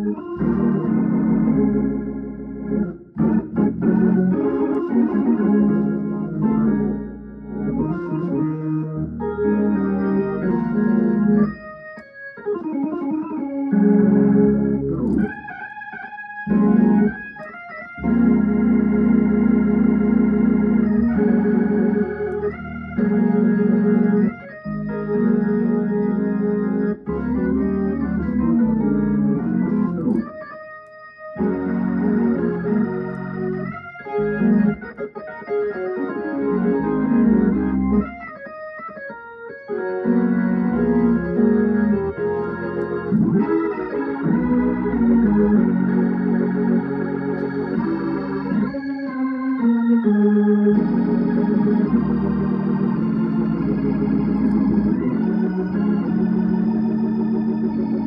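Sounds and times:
organ playing a hymn: 0.0 - 58.0.

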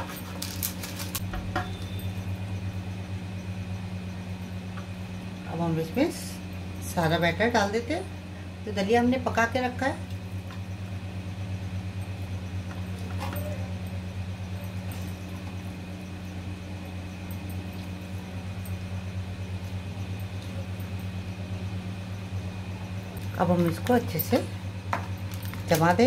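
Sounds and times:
machine hum with flutter: 0.0 - 26.0.

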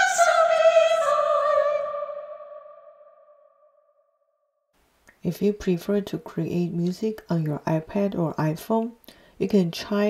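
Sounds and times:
soprano choir chord: 0.0 - 3.5.

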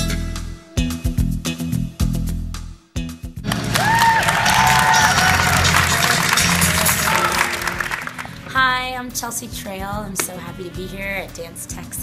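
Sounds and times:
jazz dance music: 0.0 - 12.0
people clapping: 3.4 - 8.5
people cheering and whooping: 3.5 - 8.4.

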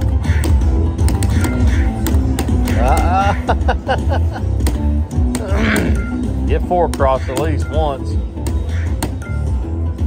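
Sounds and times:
slot machine electronic music: 0.0 - 10.0.

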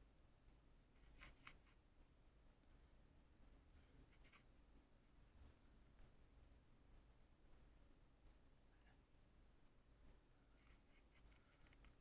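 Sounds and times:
brush scratching on palette: 1.0 - 1.8, 4.0 - 4.5, 10.5 - 12.0.

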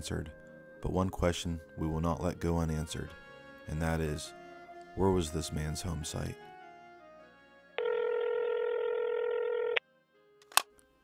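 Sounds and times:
telephone ringback tone: 7.8 - 9.8.

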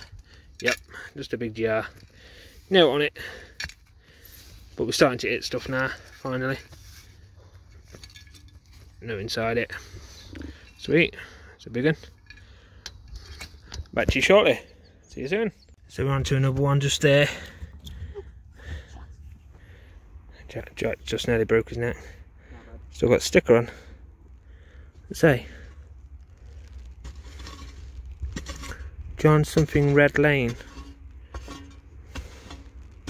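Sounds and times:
glass jar handling: 7.8 - 9.0
steady low rumble: 15.7 - 33.0.

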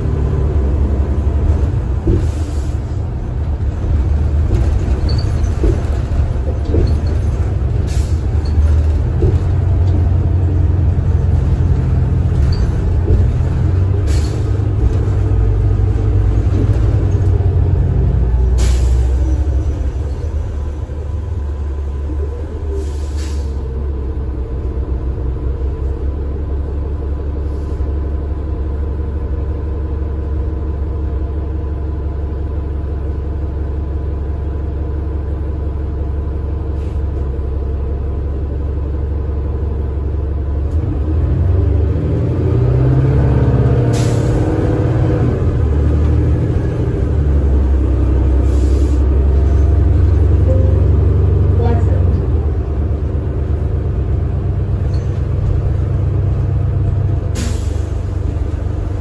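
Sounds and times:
bus engine rumbling: 0.0 - 59.0.

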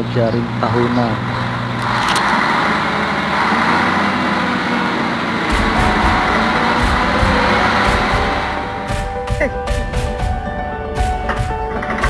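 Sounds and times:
truck engine running under load: 0.0 - 12.0
heavy low rumble: 5.2 - 12.0.

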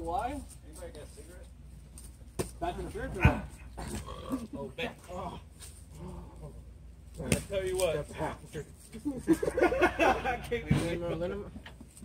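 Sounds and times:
men's indistinct voices and calls: 0.0 - 12.0.

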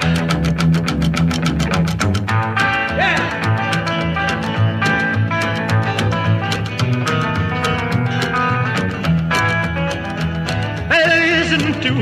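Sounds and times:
bass line: 0.0 - 12.0
electric guitar picking: 0.0 - 12.0.

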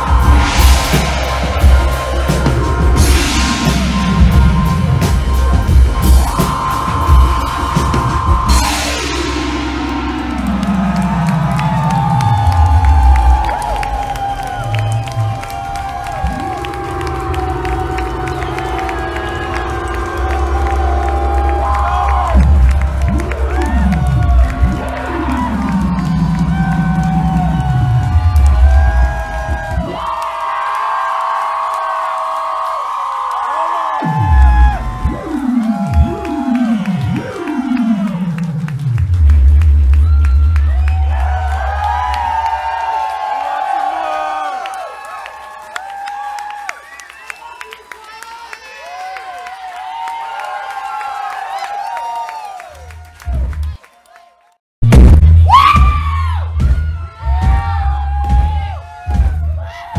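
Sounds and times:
deep bass: 0.0 - 30.2, 34.0 - 43.4, 54.8 - 59.9
synthesizer tones sliding down: 0.0 - 30.4, 33.8 - 44.1
crowd cheering: 0.0 - 59.9.

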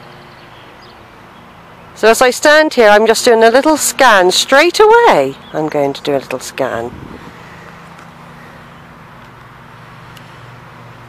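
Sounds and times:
distant road traffic hum: 0.0 - 11.0.

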